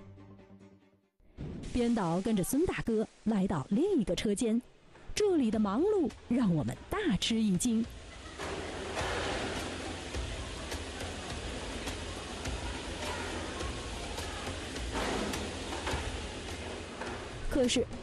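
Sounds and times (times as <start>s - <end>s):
rush like running water: 1.5s - 4.4s, 5.3s - 18.0s
low machinery hum: 7.8s - 18.0s.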